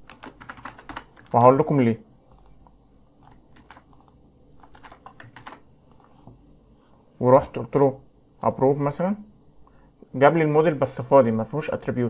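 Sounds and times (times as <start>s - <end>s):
keyboard typing: 0.0s - 6.4s.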